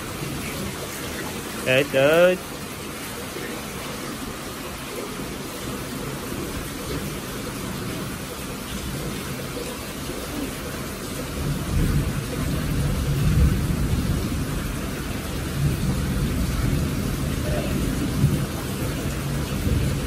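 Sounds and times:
rain falling steadily: 0.0 - 20.0.

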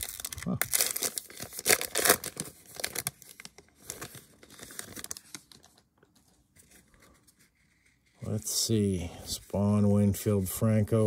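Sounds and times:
foil pack tearing and crinkling: 0.0 - 5.8
soft rustling of cards: 2.2 - 11.0.

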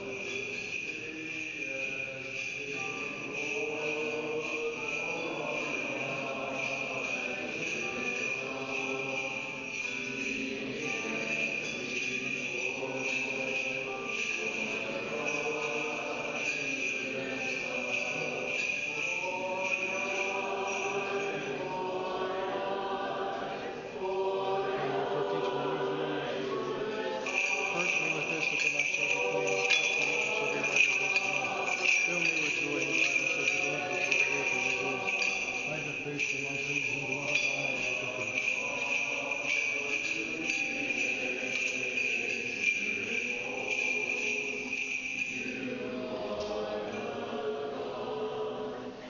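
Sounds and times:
small bells jingling: 0.0 - 48.4
voices chanting in church: 0.0 - 49.0.

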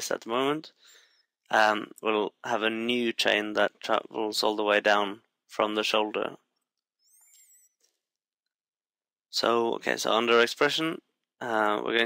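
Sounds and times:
faint high wavering tone: 7.0 - 7.8.

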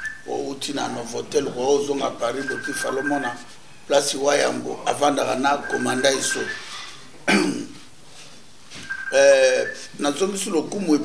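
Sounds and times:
man coughing: 7.2 - 7.8.

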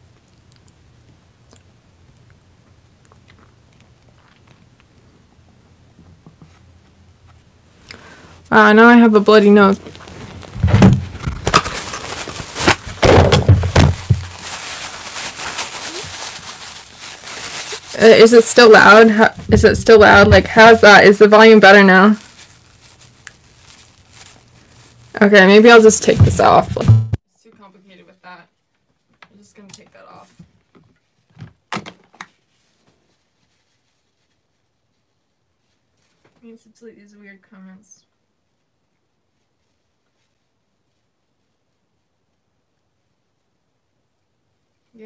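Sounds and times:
room hiss: 4.6 - 28.5
heavy knocks on microphone: 10.6 - 11.1, 13.0 - 14.3, 26.2 - 27.2
sharp knocks: 26.2 - 27.2.

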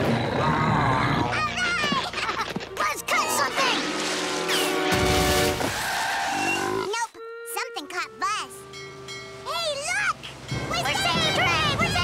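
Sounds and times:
cartoon background music: 0.7 - 5.6, 6.7 - 8.8.

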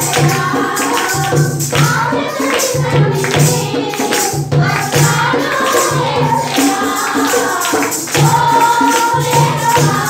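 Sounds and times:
steady beat: 0.0 - 10.0
tambourine: 0.0 - 10.0
women singing a hymn: 0.0 - 10.0.

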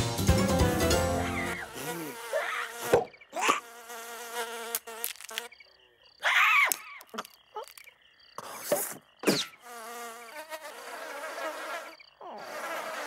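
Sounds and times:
cartoon insect buzzing: 1.2 - 5.6, 9.2 - 13.0.

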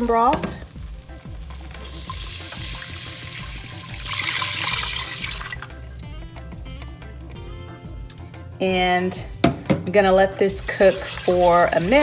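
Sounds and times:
background music: 0.0 - 12.0
broth pouring into a saucepan: 0.6 - 5.7, 10.5 - 12.0.

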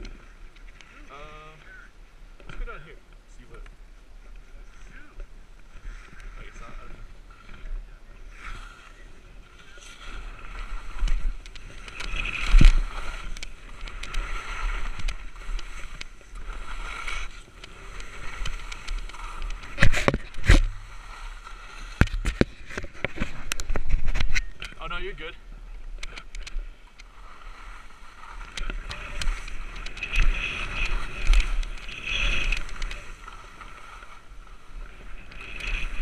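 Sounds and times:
skis scraping over snow: 4.2 - 25.3, 26.8 - 36.0.

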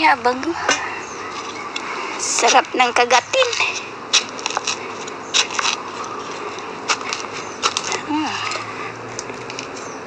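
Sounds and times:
soil and leaves scraped by hand: 0.6 - 10.0
sharp crackles: 1.2 - 9.9.

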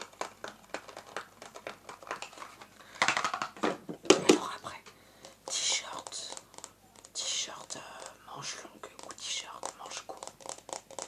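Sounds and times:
person whispering: 4.2 - 6.5, 7.2 - 10.3.

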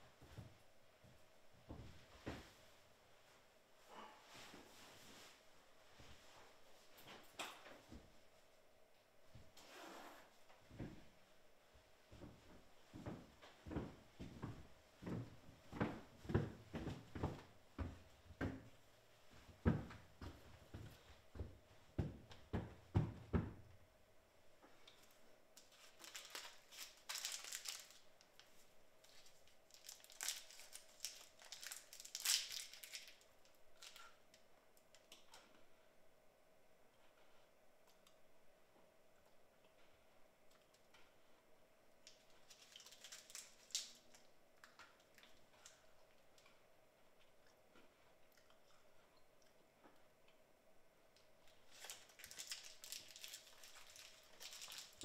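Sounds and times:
wrapper crinkling: 25.6 - 34.1, 42.1 - 44.3, 51.6 - 55.0.

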